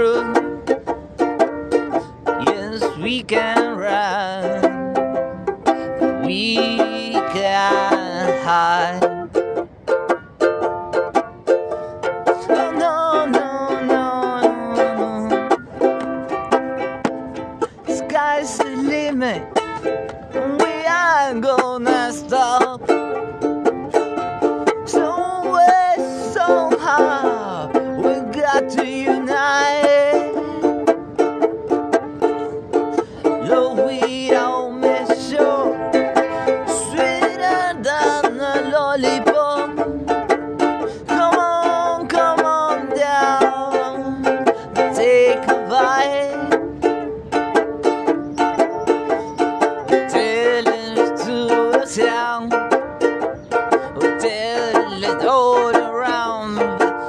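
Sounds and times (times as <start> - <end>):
man singing reggae song: 0.0 - 0.7, 1.8 - 9.4, 12.3 - 15.9, 17.6 - 23.2, 24.8 - 31.0, 33.2 - 40.0, 40.6 - 46.8, 48.9 - 52.8, 53.5 - 57.0
banjo strumming: 0.0 - 57.0.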